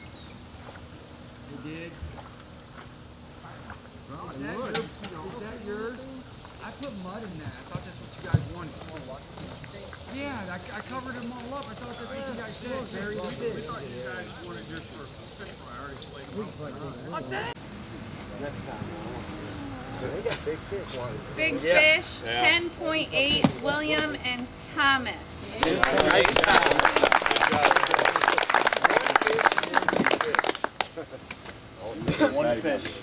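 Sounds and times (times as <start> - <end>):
group talking quietly: 1.4 - 33.0.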